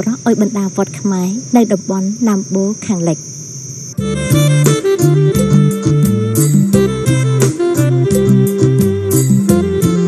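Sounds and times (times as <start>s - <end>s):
woman talking: 0.0s - 3.3s
insects droning: 0.0s - 10.0s.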